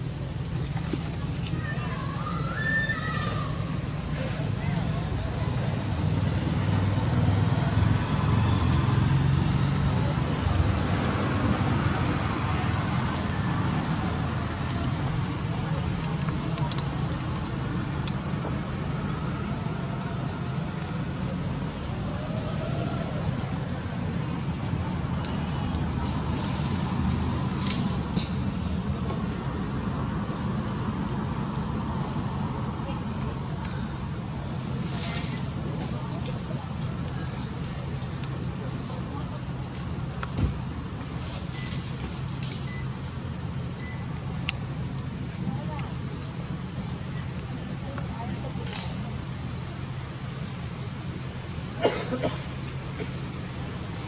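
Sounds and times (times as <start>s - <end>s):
insects singing: 0.0s - 54.0s.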